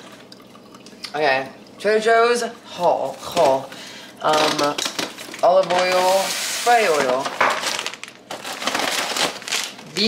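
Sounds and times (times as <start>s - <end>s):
plastic bags crinkling: 3.0s - 10.0s.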